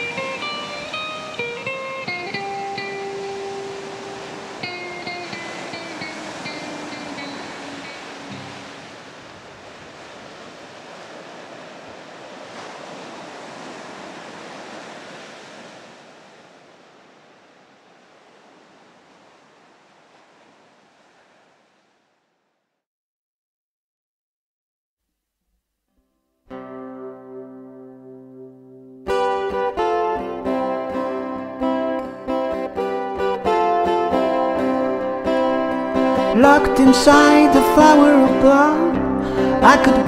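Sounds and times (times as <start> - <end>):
plucked guitar notes: 0.0 - 8.8, 26.5 - 40.0
ocean waves: 0.0 - 22.6, 29.1 - 40.0.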